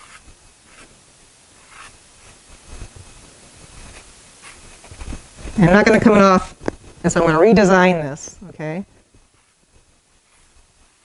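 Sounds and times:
pastel scraping on paper: 0.0s - 1.0s, 1.6s - 5.5s, 9.1s - 11.0s.

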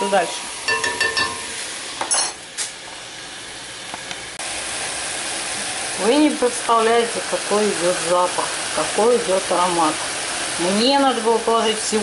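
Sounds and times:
meat and vegetables sizzling in oil: 0.0s - 12.0s.

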